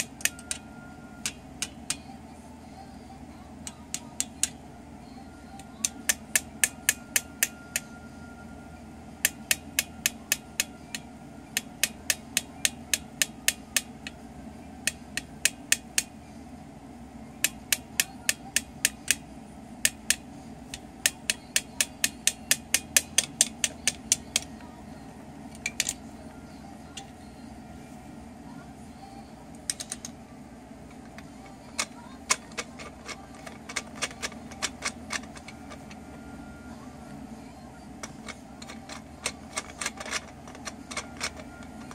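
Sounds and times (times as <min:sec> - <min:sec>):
tapping on plastic toy drill: 0:00.0 - 0:02.1, 0:03.6 - 0:04.6, 0:05.6 - 0:07.9, 0:09.2 - 0:14.2, 0:14.9 - 0:16.1, 0:17.4 - 0:19.2, 0:19.8 - 0:24.5, 0:30.9 - 0:36.2, 0:38.0 - 0:41.9.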